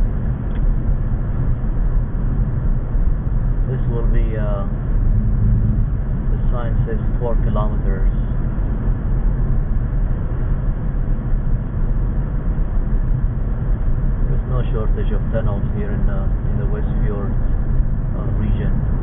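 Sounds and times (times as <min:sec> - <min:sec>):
car engine rumble: 0:00.0 - 0:19.0.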